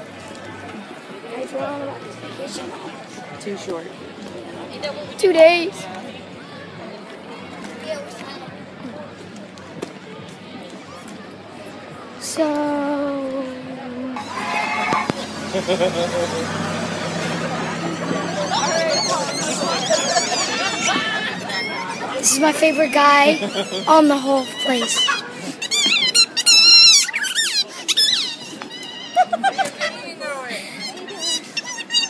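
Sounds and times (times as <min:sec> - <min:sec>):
wavering squeal: 0:14.2 - 0:15.5, 0:17.5 - 0:22.2
boy drawing out a long word: 0:22.2 - 0:24.9
high-pitched squeaks and chirps: 0:24.8 - 0:29.1.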